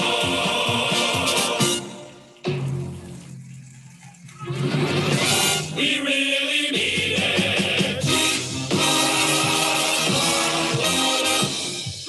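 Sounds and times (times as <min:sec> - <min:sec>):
men's chorus singing cadence: 0:00.0 - 0:01.8, 0:05.6 - 0:08.2, 0:09.2 - 0:11.0
band accompaniment: 0:07.1 - 0:12.0.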